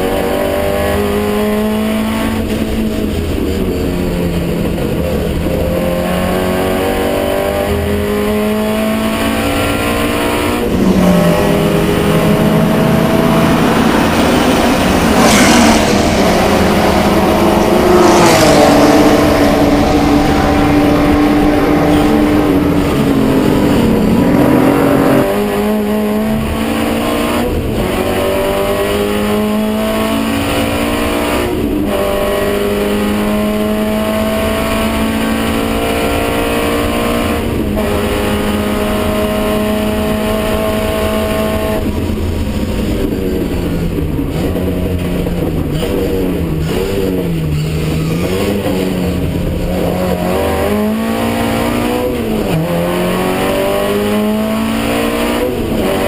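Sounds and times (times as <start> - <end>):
racing car engine revving: 0.0 - 56.0.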